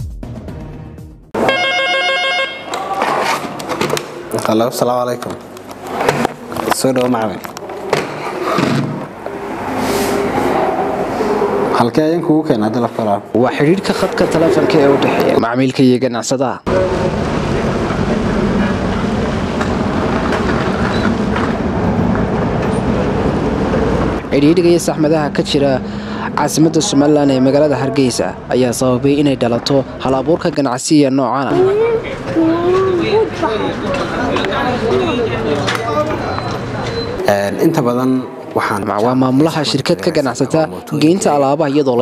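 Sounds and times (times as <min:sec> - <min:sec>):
desk telephone ringing: 0:01.4 - 0:02.8
vehicle engines rumbling: 0:01.4 - 0:16.0, 0:16.6 - 0:42.0
road noise: 0:01.4 - 0:42.0.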